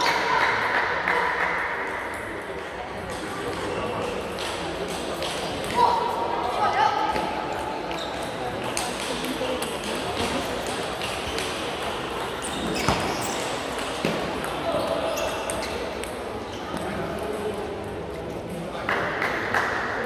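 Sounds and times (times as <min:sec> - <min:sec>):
murmur of voices: 0:00.0 - 0:20.0.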